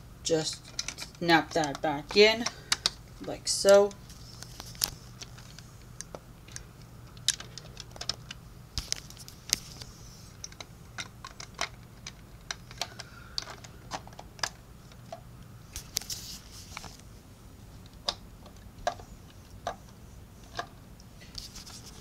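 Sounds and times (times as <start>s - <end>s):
plastic bricks clicking: 5.2s - 8.4s, 10.4s - 15.2s.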